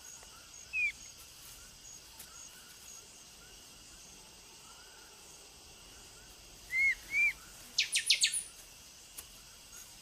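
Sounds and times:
insect chirping: 0.0s - 10.0s.

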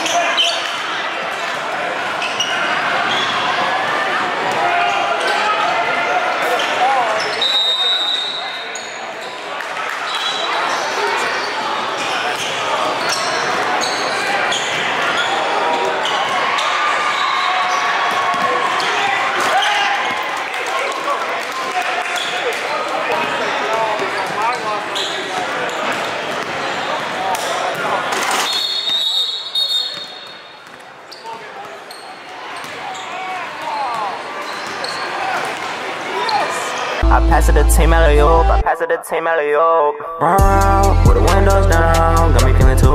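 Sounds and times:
echoing indistinct voices: 36.0s - 42.9s.

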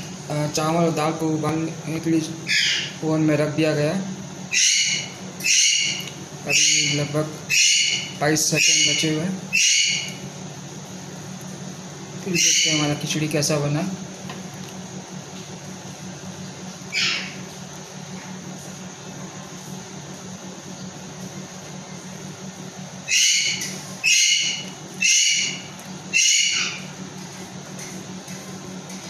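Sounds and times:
microwave oven humming: 0.0s - 29.0s.

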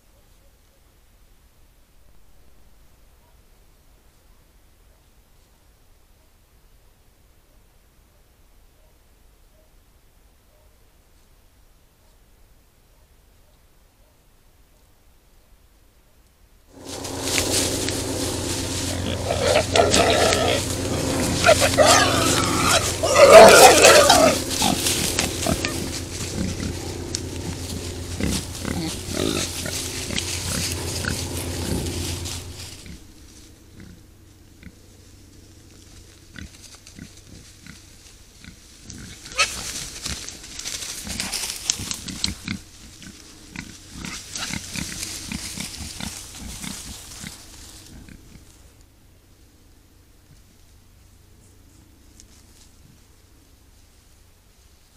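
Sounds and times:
boars foraging in leaf litter: 16.7s - 54.9s
steady low hum: 16.7s - 54.9s
boars grunting and squealing: 16.8s - 34.0s, 36.3s - 48.6s.

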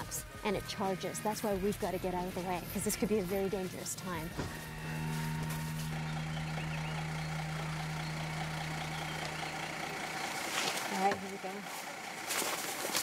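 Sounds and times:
vehicle engine idling: 0.0s - 13.0s.

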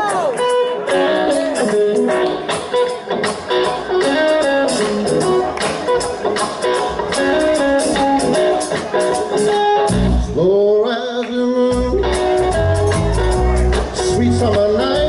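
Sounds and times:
blues-rock band playing: 0.0s - 15.0s
electric guitar notes: 0.0s - 15.0s
deep bass note: 9.9s - 10.4s.

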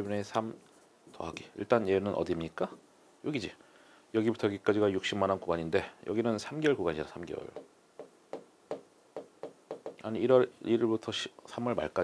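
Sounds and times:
pen tapping on board: 7.6s - 10.0s.

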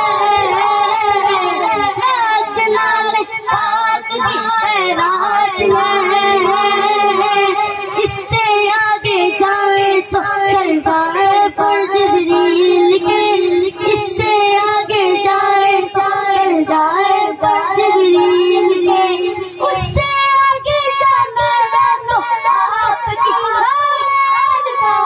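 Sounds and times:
boy singing into a microphone: 0.0s - 25.0s.

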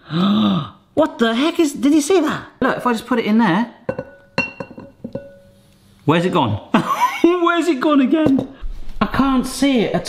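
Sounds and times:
kitchenware clinking on glass bowls: 3.9s - 5.6s.

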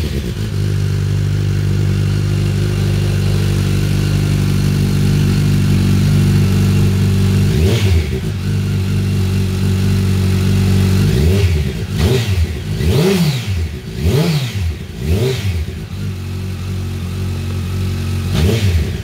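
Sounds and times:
motorcycle engine idling and revving: 0.0s - 19.0s.

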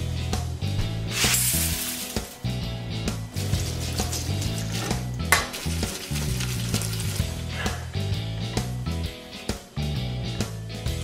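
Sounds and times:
background music with bass line: 0.0s - 11.0s
hiss: 1.1s - 2.4s.

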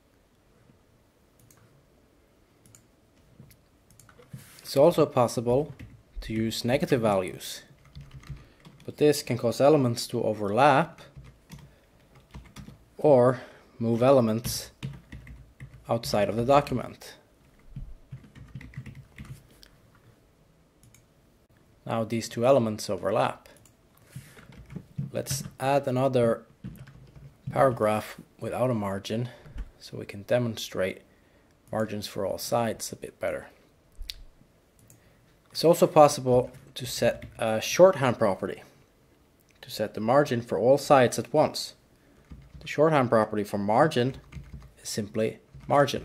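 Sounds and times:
computer keyboard keystrokes: 7.8s - 8.9s, 11.0s - 12.8s, 14.8s - 15.9s, 17.6s - 19.4s, 26.6s - 27.6s, 42.2s - 42.7s, 44.1s - 44.7s.

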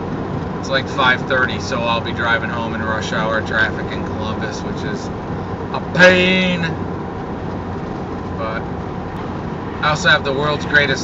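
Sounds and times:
engine and road noise: 0.0s - 11.0s.

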